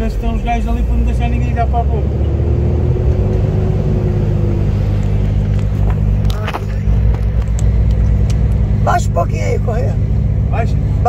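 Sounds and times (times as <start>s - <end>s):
truck diesel engine droning: 0.0s - 11.0s.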